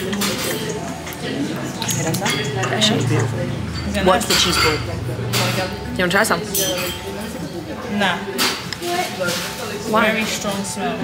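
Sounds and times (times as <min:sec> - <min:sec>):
busy restaurant background: 0:00.0 - 0:11.0.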